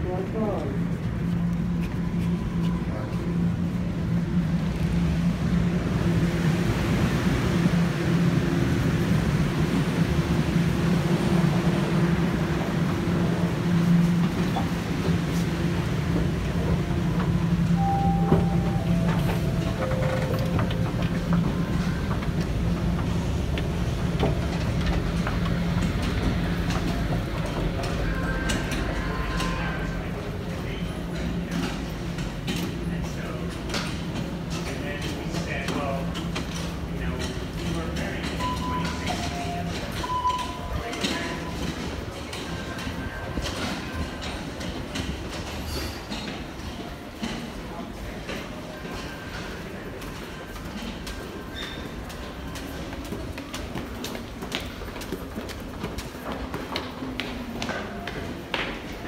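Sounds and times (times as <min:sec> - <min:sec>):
train rumbling: 0:00.0 - 0:59.0.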